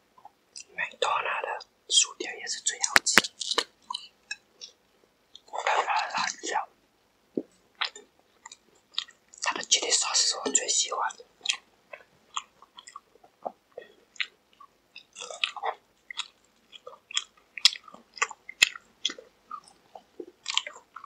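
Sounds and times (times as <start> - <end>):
chewing crispy chicken: 2.9 - 4.8, 7.4 - 9.8, 11.1 - 21.0
wet mouth sounds: 11.4 - 21.0.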